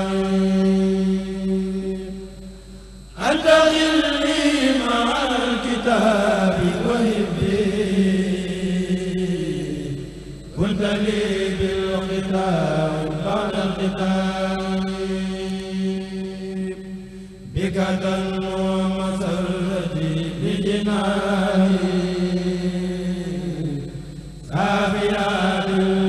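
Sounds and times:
men chanting through microphones: 0:00.0 - 0:02.0, 0:03.2 - 0:26.0.

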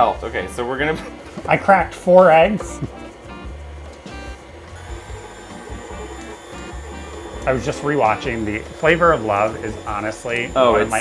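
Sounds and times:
background music: 0:00.0 - 0:11.0
stand mixer whirring: 0:03.2 - 0:11.0
whisk beating batter: 0:04.6 - 0:11.0.

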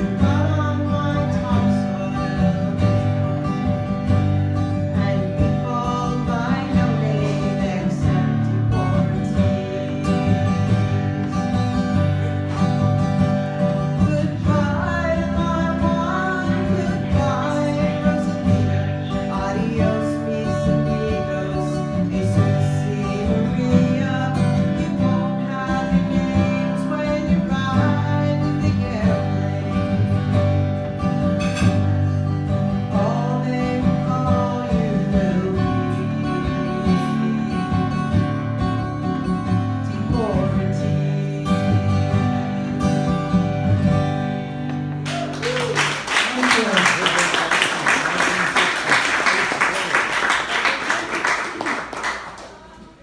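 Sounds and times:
strummed acoustic guitar: 0:00.0 - 0:46.0.

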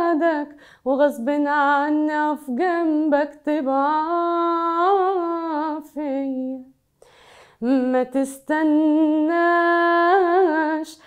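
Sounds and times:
woman singing unaccompanied: 0:00.0 - 0:06.8, 0:07.6 - 0:11.0.

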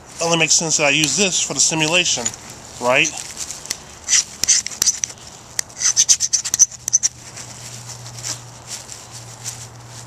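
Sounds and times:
hands scratching tissue and tinder: 0:00.4 - 0:10.0.

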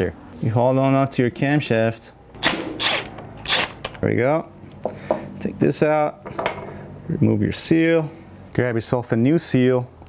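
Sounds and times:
impact driver hammering: 0:02.4 - 0:04.0.

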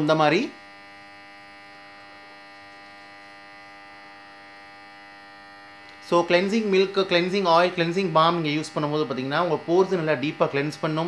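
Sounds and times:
electrical hum with buzz: 0:00.0 - 0:11.0.

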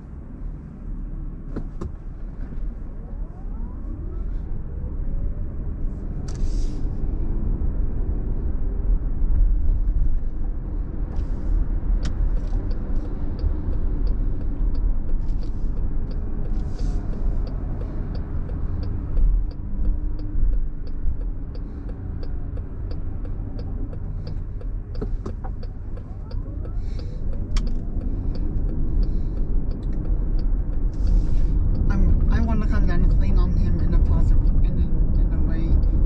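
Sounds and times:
car interior road and engine noise: 0:00.0 - 0:36.0
regular light ticking: 0:12.0 - 0:31.9.

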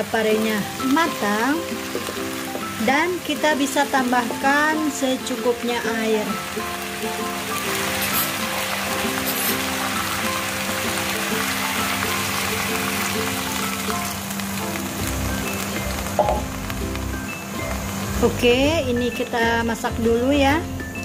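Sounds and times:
background music: 0:00.0 - 0:21.0
food sizzling in a wok: 0:00.0 - 0:21.0
water poured into a wok: 0:06.2 - 0:18.2.

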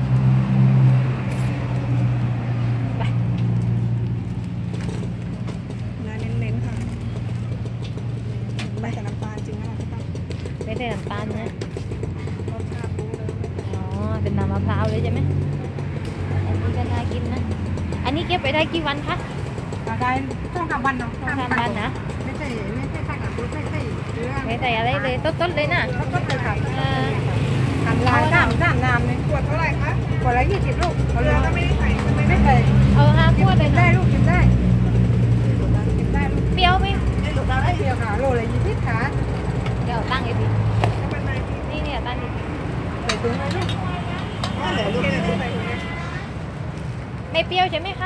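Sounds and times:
engine idling: 0:01.3 - 0:48.0
woman speaking: 0:10.6 - 0:11.6, 0:16.4 - 0:34.4, 0:35.5 - 0:39.2, 0:39.8 - 0:42.4, 0:47.3 - 0:48.0.

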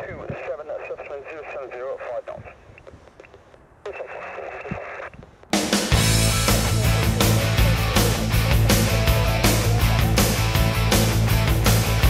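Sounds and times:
tinny radio voice: 0:00.0 - 0:02.9, 0:03.8 - 0:05.1
radio hiss: 0:00.0 - 0:05.5
loud rock music: 0:05.6 - 0:12.0.

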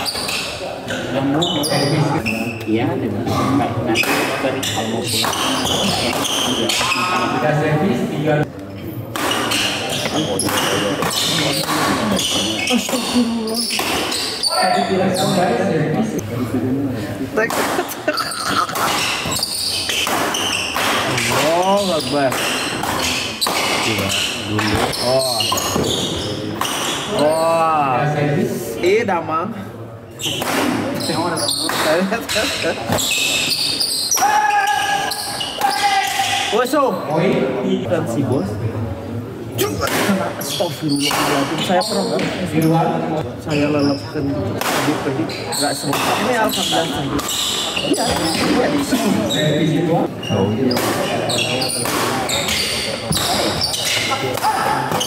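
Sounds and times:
shoe squeaks on floor: 0:00.0 - 0:02.8, 0:03.9 - 0:07.4, 0:09.3 - 0:15.5, 0:18.1 - 0:27.6, 0:30.1 - 0:37.1, 0:40.4 - 0:42.8, 0:43.5 - 0:44.4, 0:45.2 - 0:55.0
spectators talking: 0:00.0 - 0:55.0
racket hitting shuttlecock: 0:09.1 - 0:12.0, 0:18.7 - 0:21.4, 0:51.8 - 0:55.0.

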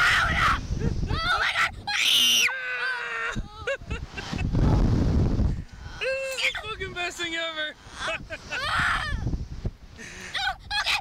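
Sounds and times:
wind rumbling on microphone: 0:00.0 - 0:02.5, 0:03.1 - 0:11.0
riders laughing: 0:03.3 - 0:04.7, 0:07.8 - 0:08.7, 0:10.0 - 0:10.5.

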